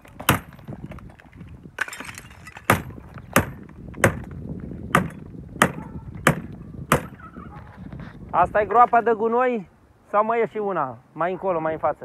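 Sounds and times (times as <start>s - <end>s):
sharp knocks on brick: 0.2s - 0.6s, 2.6s - 7.2s.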